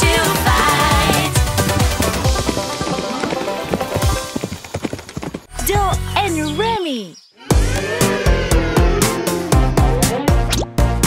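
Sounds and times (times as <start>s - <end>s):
backing music: 0.0s - 4.4s, 7.5s - 11.0s
cartoon hoofbeats clip-clop: 0.0s - 6.5s.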